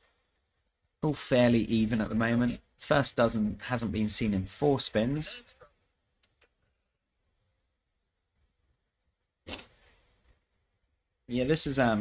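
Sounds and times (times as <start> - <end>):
sniff: 9.5 - 10.1.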